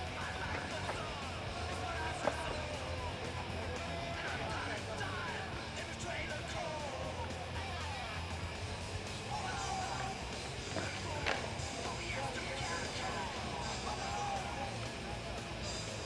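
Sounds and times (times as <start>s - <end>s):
background music: 0.0s - 16.0s
crowd chatter: 0.0s - 16.0s
skateboard clacking on floor: 0.1s - 4.6s, 10.7s - 13.2s.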